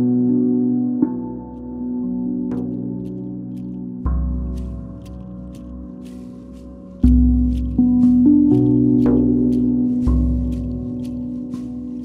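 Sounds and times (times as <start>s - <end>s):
deep drum beat: 4.1s - 12.0s.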